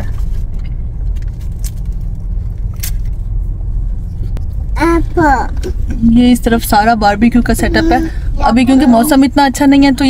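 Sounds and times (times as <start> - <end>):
car engine rumble: 0.0 - 10.0
road noise inside car: 0.0 - 10.0.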